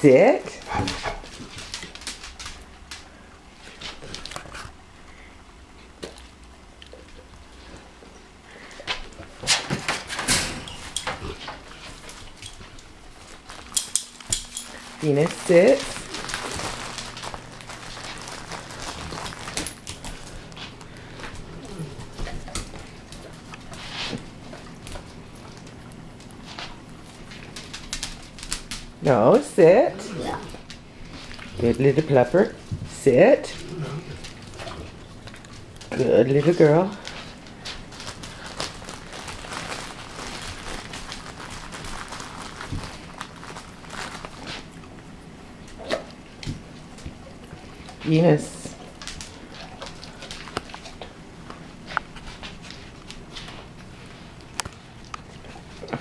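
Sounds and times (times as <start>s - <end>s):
dog claws clicking on vinyl floor: 0.7s - 4.8s, 9.7s - 29.0s, 37.0s - 44.7s, 48.7s - 53.7s.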